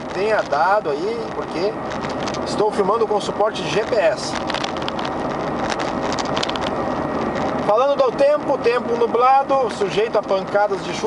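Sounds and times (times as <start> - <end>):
car engine and tyre drone: 0.0 - 11.0.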